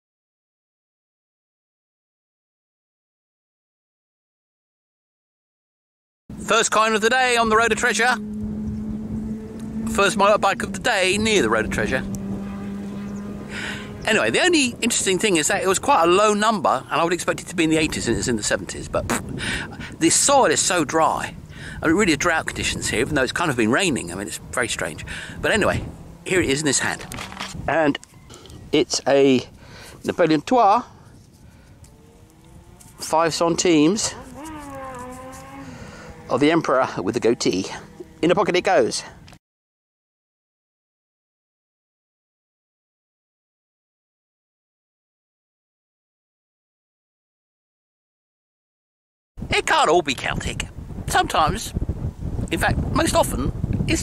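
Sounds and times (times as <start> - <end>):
wind rumbling on microphone: 6.3 - 39.4, 49.4 - 54.0
motorbike engine running: 7.4 - 15.0, 34.1 - 36.5.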